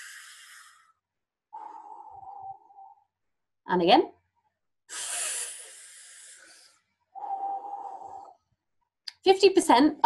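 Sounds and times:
person breathing in: 0.0 - 3.0, 4.9 - 8.4
person breathing out: 0.0 - 3.0, 4.9 - 8.4.

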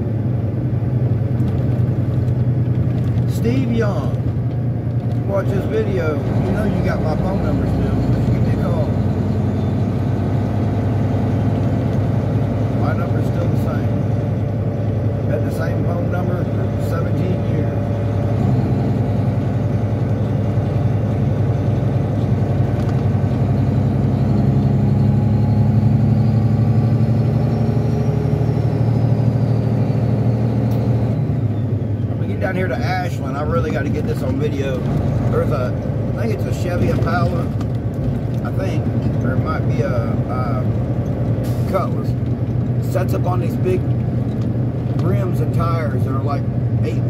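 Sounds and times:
truck engine drone: 0.0 - 47.0.

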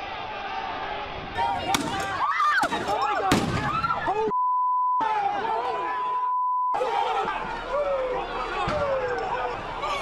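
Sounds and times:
voices shouting: 0.0 - 4.4, 5.0 - 10.0
censor bleep tone: 4.3 - 5.0, 6.3 - 6.8.

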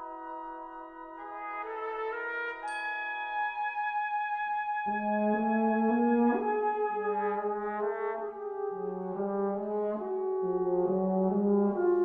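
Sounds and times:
brass band playing chords: 4.4 - 12.0.

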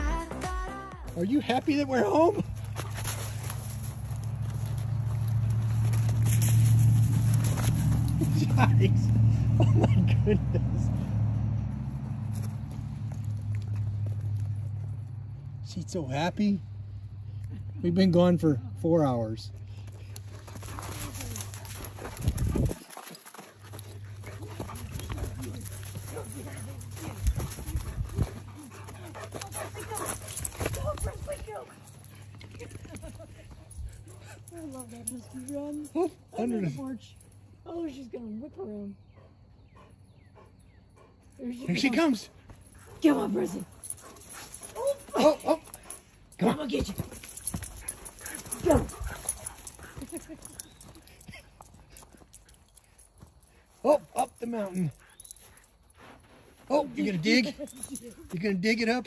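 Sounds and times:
dog paws thudding on ground: 2.5 - 8.7, 19.8 - 33.6, 42.4 - 53.4.

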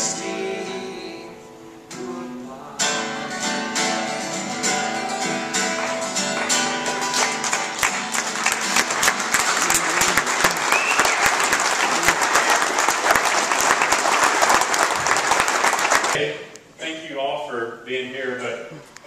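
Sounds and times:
acoustic guitar notes ringing: 0.0 - 10.5
audience clapping: 5.6 - 16.2.

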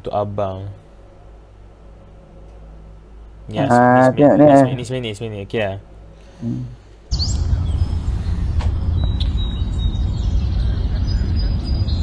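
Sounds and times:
steady low rumble: 0.0 - 12.0
birds chirping: 7.1 - 12.0
quick rising chirp: 7.1 - 12.0.

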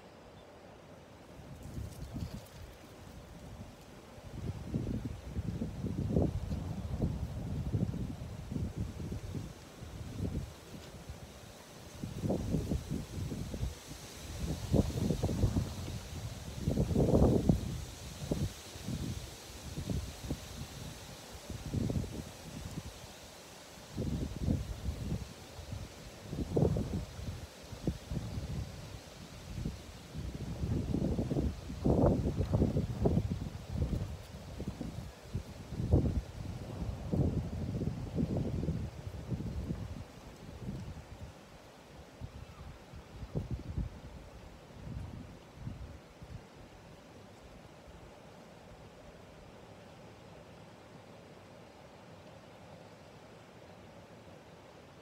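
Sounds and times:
wind buffeting microphone: 1.5 - 11.1, 12.0 - 20.9, 24.0 - 41.1.

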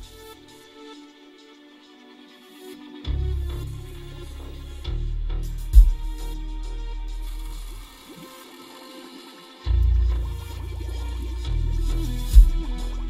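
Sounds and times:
bass-heavy music in a car: 0.0 - 0.9, 3.0 - 8.1, 9.6 - 13.0.

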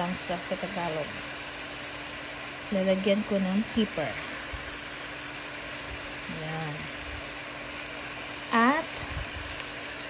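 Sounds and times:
food sizzling in a pot: 0.0 - 10.0.

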